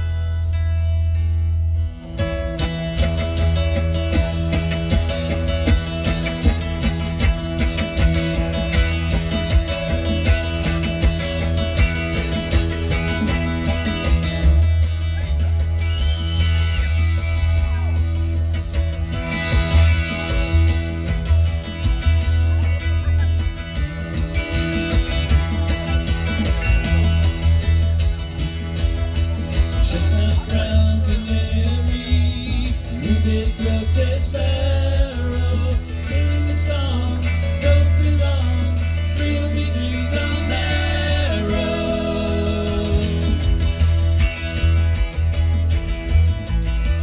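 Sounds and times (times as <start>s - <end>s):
rock band playing instrumental: 0.0s - 47.0s.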